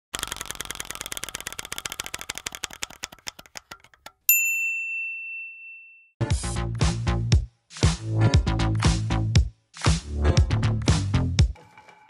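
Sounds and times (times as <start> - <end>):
rapid ticking: 0.2 - 4.2
bright bell ding: 4.3 - 6.2.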